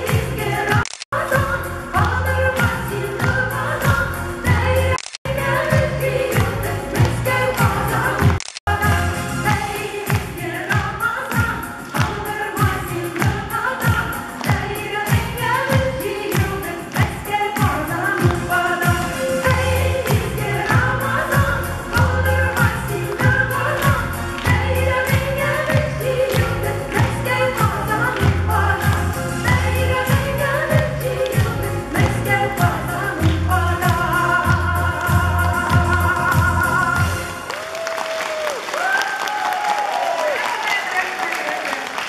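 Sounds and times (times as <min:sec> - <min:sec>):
deep bass line: 0:00.0 - 0:09.5, 0:19.5 - 0:37.3
women's ensemble singing: 0:00.0 - 0:37.1
backing music with steady beat: 0:00.0 - 0:37.5.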